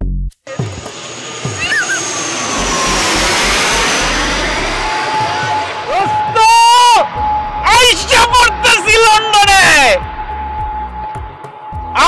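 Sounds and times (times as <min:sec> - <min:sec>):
high jet whine: 0:00.5 - 0:12.0
jet engine roar: 0:00.5 - 0:12.0.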